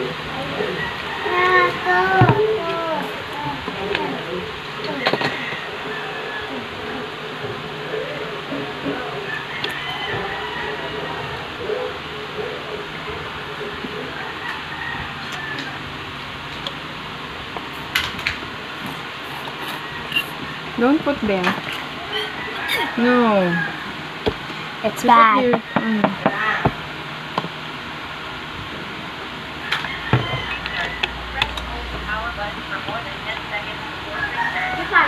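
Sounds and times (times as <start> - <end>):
faint indistinct voices: 0.0 - 15.9, 29.6 - 35.0.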